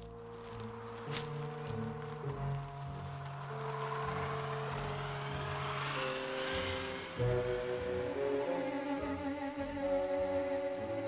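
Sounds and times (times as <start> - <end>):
background score held notes: 0.0 - 11.0
bus engine pulling away: 0.0 - 11.0.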